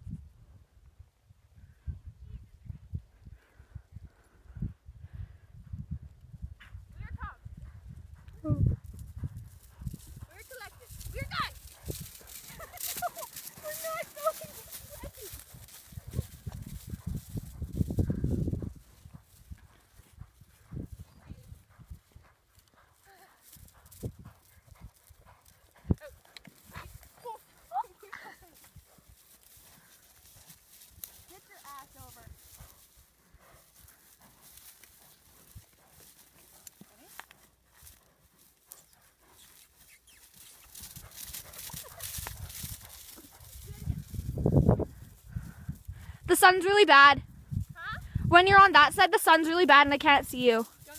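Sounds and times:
horse hoofbeats on stubble: 6.6 - 50.9.

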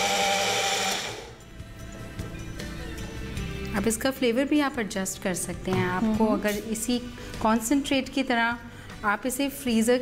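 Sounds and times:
electric mixer motor whirring: 0.0 - 1.4.

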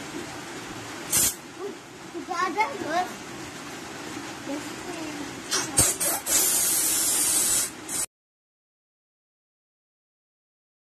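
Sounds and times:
gas hissing into balloon: 1.1 - 1.4, 5.5 - 8.1.

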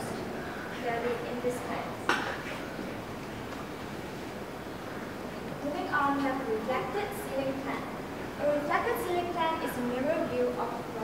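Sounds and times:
woman speaking: 0.8 - 2.0, 5.6 - 11.0.

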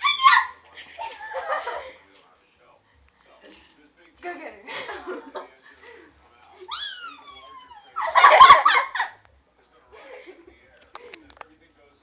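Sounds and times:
animal crying: 6.7 - 8.2.

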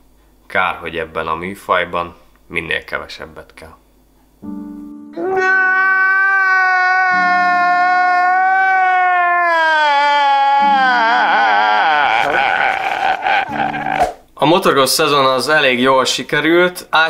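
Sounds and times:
man crying loudly: 5.2 - 14.1.

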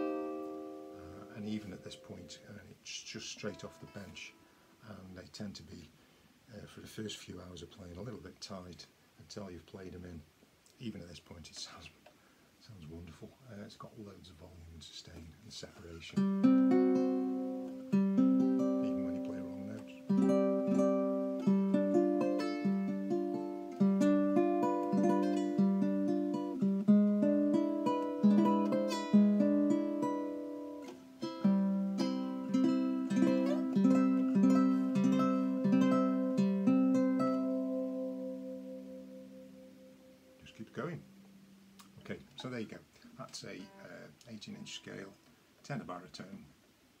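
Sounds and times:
ukulele plucked notes and chords: 0.0 - 2.5, 16.2 - 42.0.

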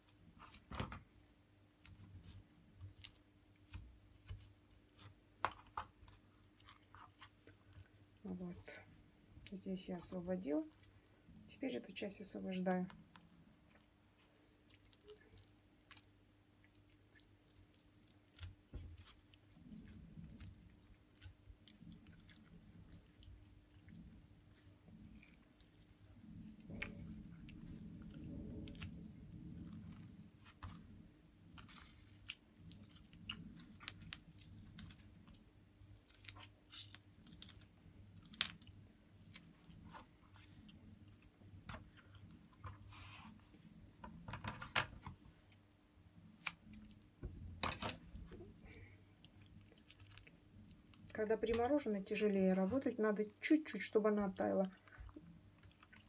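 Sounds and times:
wet crackling of fish flesh: 0.0 - 11.0, 12.7 - 43.4, 45.0 - 56.0
faint steady hum: 0.0 - 56.0.

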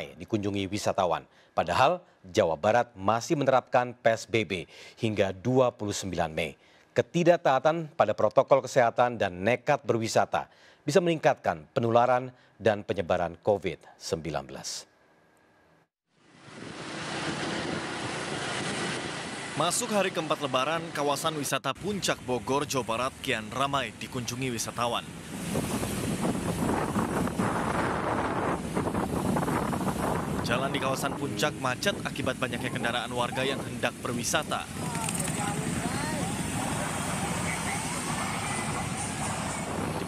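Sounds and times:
road traffic noise: 16.2 - 40.0
car and motorcycle engines running: 16.4 - 40.0.

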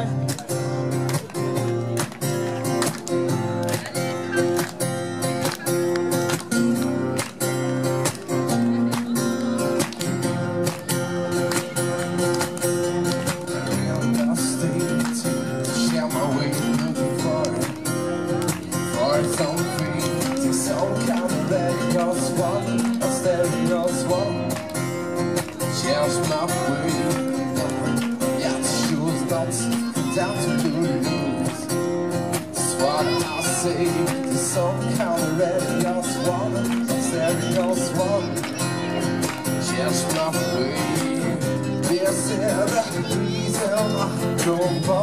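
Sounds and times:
acoustic guitars strummed: 0.0 - 45.0
man singing: 6.4 - 45.0.

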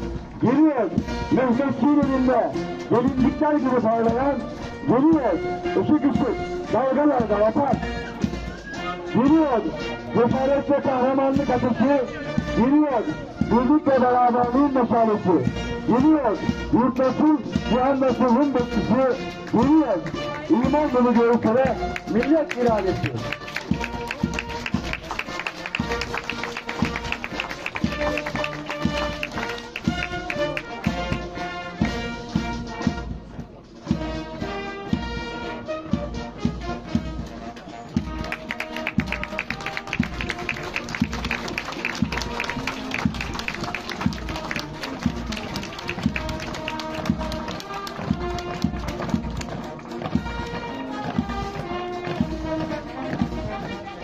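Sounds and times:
brass band playing a march: 0.0 - 54.0
steady drum beat: 15.3 - 54.0.

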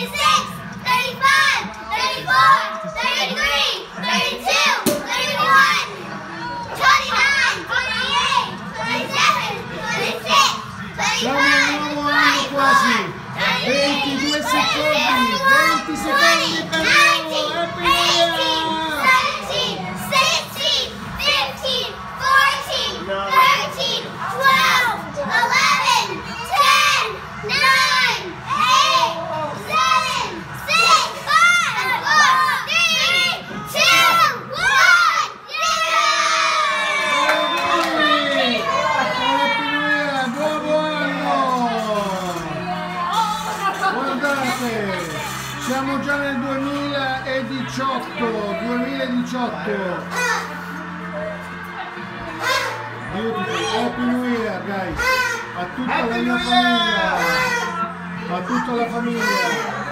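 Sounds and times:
children shouting and squealing: 0.0 - 49.2, 49.8 - 59.9.

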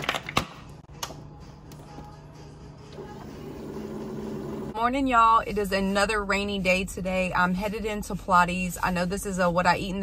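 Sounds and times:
coffee maker humming: 2.9 - 4.8.

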